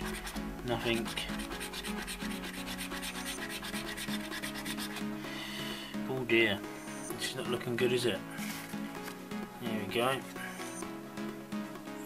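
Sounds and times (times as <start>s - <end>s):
coin scraping scratchcard: 1.1s - 5.0s.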